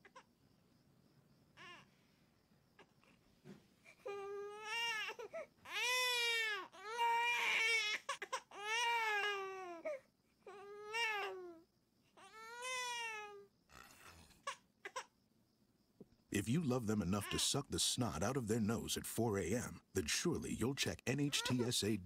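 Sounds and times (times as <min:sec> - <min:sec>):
infant crying: 0:04.0 - 0:11.6, 0:12.2 - 0:15.1, 0:21.3 - 0:21.7.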